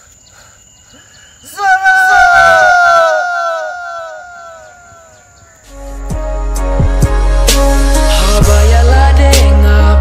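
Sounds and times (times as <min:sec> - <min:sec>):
man screaming: 0:01.5 - 0:05.2
music with low bass: 0:05.7 - 0:10.0.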